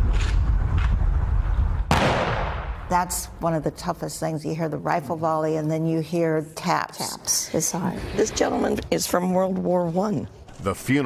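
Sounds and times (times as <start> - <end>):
steady low rumble: 0.0 - 4.4
rifle volley with echo: 1.8 - 2.9.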